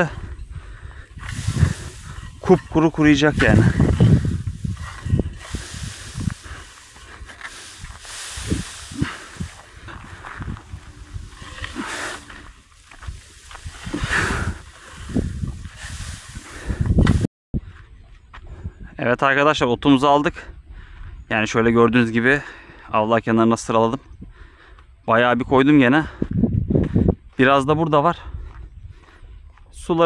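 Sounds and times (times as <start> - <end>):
dry grass rustling: 0.0 - 17.3
dull low thumps: 0.0 - 18.5.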